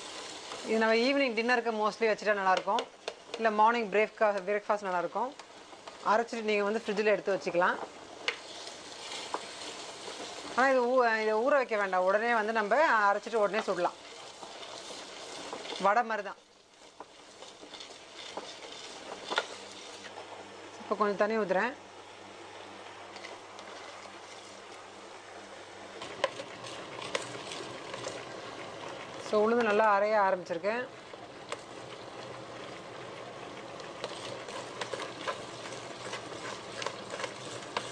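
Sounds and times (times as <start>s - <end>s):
wet grinder churning batter: 0.0s - 1.0s, 8.2s - 16.0s, 16.7s - 20.3s, 26.0s - 37.9s
spatula scraping batter: 8.3s - 10.5s, 13.6s - 15.8s, 16.9s - 20.2s, 26.0s - 29.8s, 33.5s - 37.9s.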